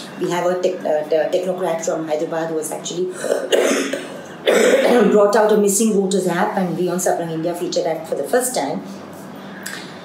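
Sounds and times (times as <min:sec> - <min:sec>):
woman coughing: 0:03.2 - 0:05.3.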